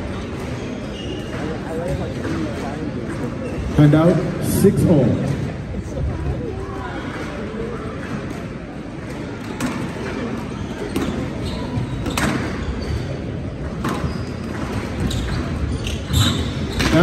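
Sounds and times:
squash ball hitting rackets and walls: 0:07.3 - 0:17.0.

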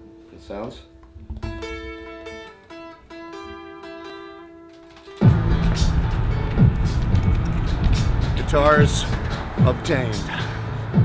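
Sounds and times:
guitar picking a melody: 0:00.0 - 0:10.2.

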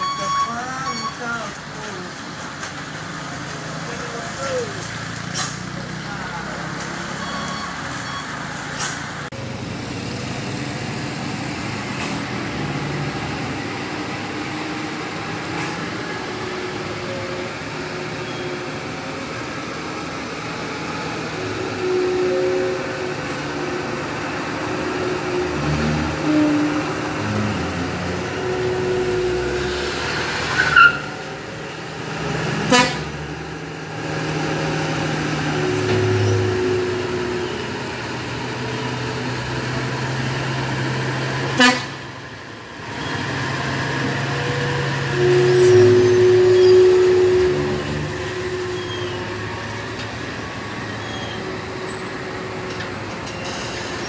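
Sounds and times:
heavy truck engines running: 0:00.0 - 0:54.0
vehicle horns tooting: 0:32.7 - 0:33.1, 0:41.6 - 0:42.0, 0:44.4 - 0:49.4.

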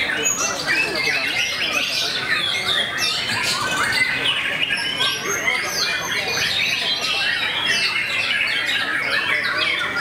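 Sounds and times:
songbirds singing chorus: 0:00.0 - 0:10.0.

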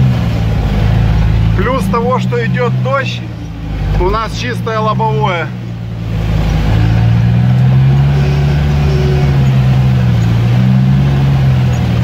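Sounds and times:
engine droning under load: 0:00.0 - 0:12.0.

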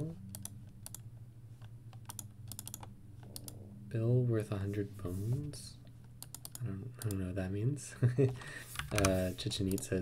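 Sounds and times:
steady low hum: 0:00.0 - 0:10.0
keyboard keys clicking: 0:01.9 - 0:03.6.

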